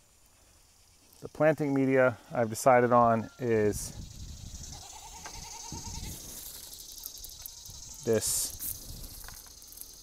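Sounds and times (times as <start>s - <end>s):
high insect drone: 0.0s - 10.0s
faint wavering animal call: 1.6s - 3.8s.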